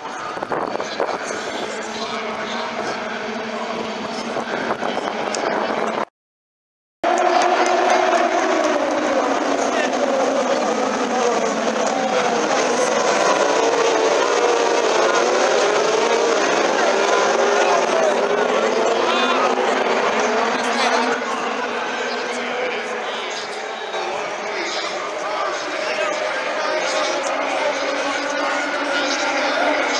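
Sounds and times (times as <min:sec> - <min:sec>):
race car engines passing: 0:00.0 - 0:06.1, 0:07.1 - 0:29.9.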